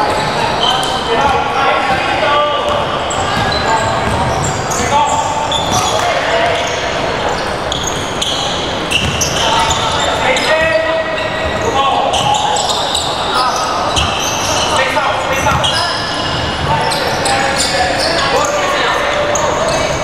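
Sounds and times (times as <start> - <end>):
players calling out: 0.0 - 20.0
sneakers squeaking: 0.0 - 20.0
basketball bouncing on wooden court: 2.6 - 6.0, 8.9 - 9.8.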